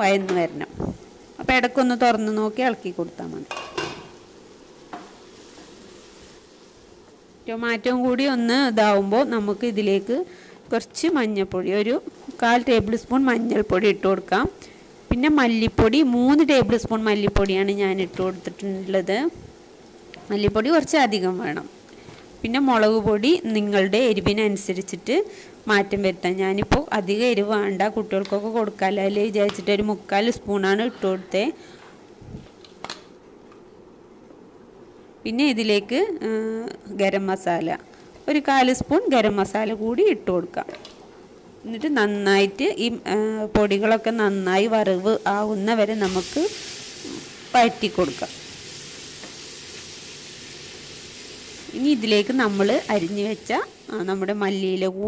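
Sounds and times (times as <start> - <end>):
vegetables sizzling in oil: 0.0 - 32.8, 35.4 - 55.0
induction hob humming: 0.0 - 55.0.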